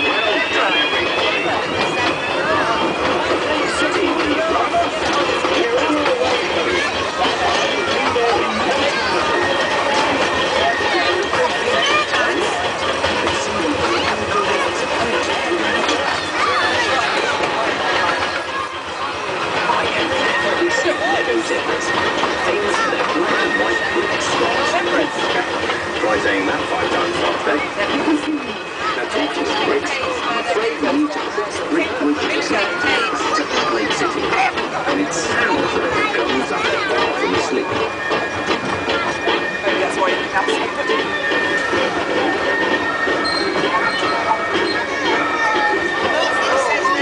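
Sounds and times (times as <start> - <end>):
people's voices: 0.0 - 47.0
small passenger train running: 0.0 - 47.0.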